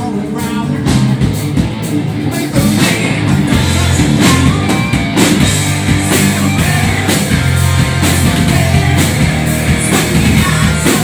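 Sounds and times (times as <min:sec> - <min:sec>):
drum kit: 0:00.0 - 0:11.0
electric guitars: 0:00.0 - 0:11.0
lead singer singing: 0:02.2 - 0:11.0.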